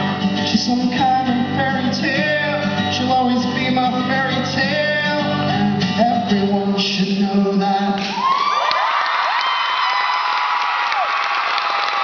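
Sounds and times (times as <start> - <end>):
audience cheering and clapping: 8.0 - 12.0
high-pitched screams and whoops: 8.0 - 12.0.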